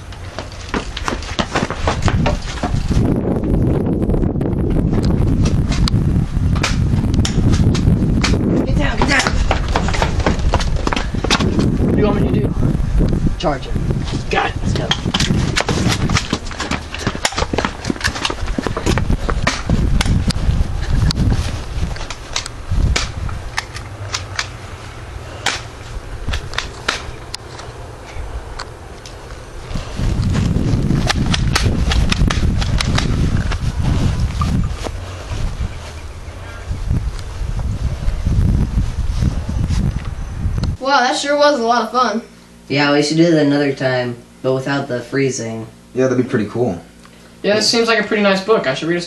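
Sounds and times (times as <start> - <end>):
wind rumble on microphone: 0.0 - 41.5.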